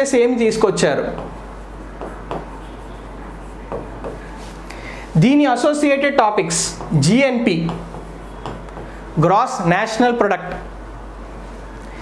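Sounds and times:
steady low hum: 0.0s - 12.0s
pen strokes and taps on screen: 2.0s - 2.6s, 7.6s - 9.0s.

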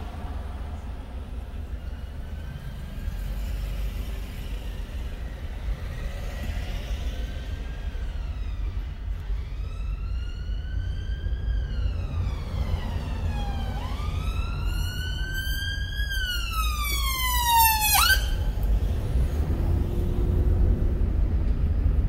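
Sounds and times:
road and engine rumble: 0.0s - 22.0s
siren wailing: 8.2s - 18.6s.

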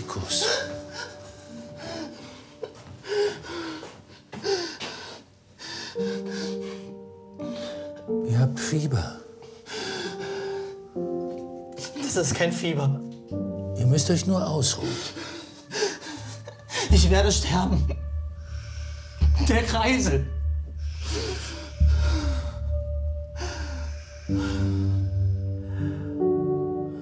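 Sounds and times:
low music drone: 13.1s - 27.0s.

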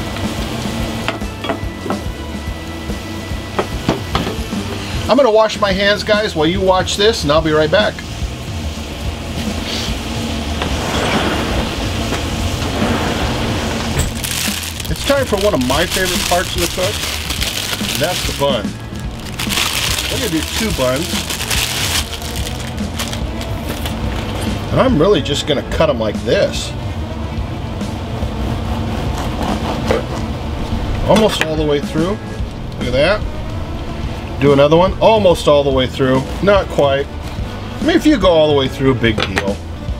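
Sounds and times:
steak sizzling in a skillet: 13.8s - 23.7s
knife sawing through bread roll: 28.4s - 30.3s.

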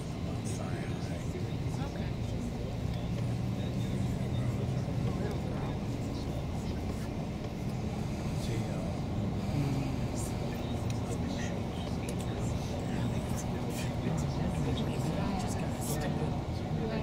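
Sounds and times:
bus engine and road rumble: 0.0s - 17.0s
indistinct voices: 7.8s - 17.0s.

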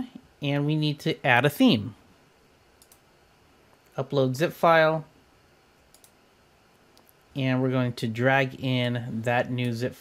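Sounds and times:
computer mouse clicks: 2.8s - 3.1s, 5.8s - 6.2s.

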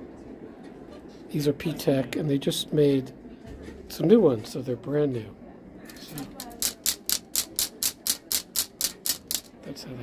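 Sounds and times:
wooden clacks: 6.3s - 9.5s.

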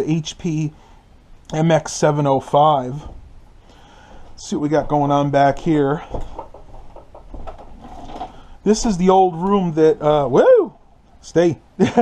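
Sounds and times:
footsteps on wooden floor: 4.2s - 8.0s.

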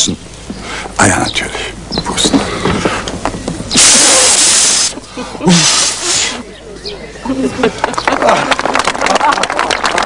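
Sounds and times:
person blowing hard puffs: 3.7s - 6.4s.

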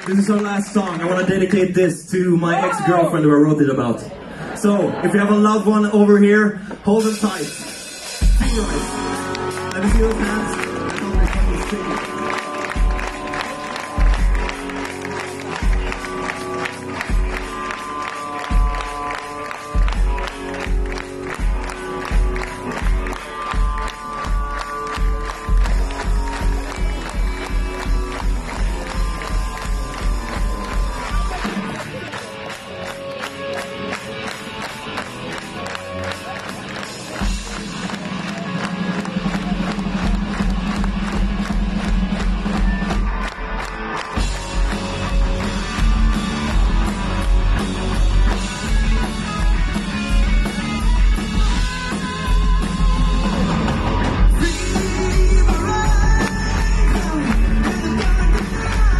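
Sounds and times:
electric guitars and bass: 0.0s - 58.9s.

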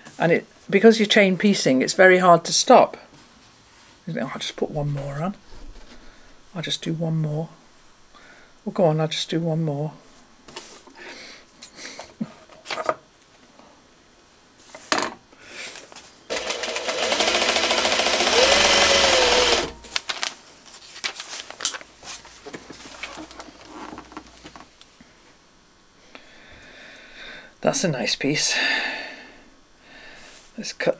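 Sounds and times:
sewing machine needle rattle: 16.3s - 19.8s
fabric rustling: 19.8s - 24.8s.

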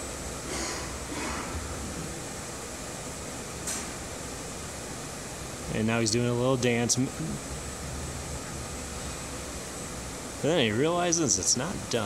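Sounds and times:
room hum with air noise: 0.0s - 12.0s.

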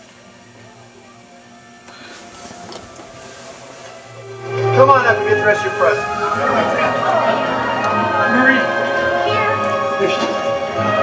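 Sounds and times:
television music: 0.0s - 11.0s.

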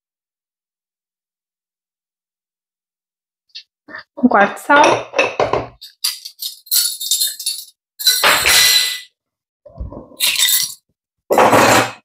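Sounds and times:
kitchenware clinking and rattling: 4.7s - 9.1s, 9.8s - 12.0s.

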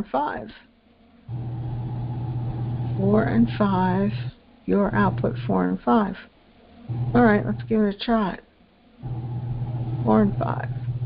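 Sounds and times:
steady low hum: 0.7s - 11.0s.

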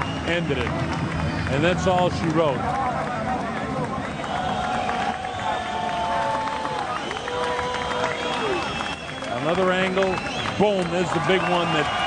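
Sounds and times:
arena crowd voices: 0.0s - 12.0s.

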